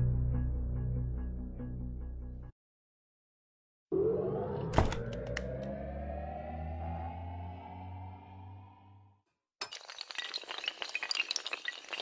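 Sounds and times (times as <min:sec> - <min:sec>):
low drone: 0:03.9 - 0:09.1
rising synthesized tone: 0:03.9 - 0:09.2.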